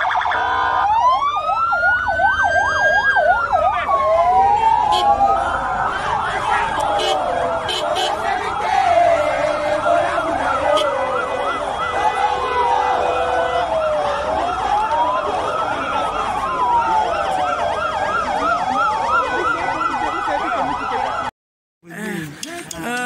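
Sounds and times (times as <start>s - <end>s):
siren wailing: 0.0s - 21.3s
siren yelping: 0.0s - 21.3s
crowd noise: 2.8s - 23.0s.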